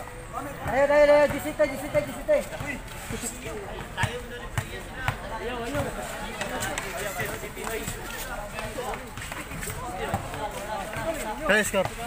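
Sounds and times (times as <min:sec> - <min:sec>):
basketball bouncing on concrete: 0:00.6 - 0:08.0.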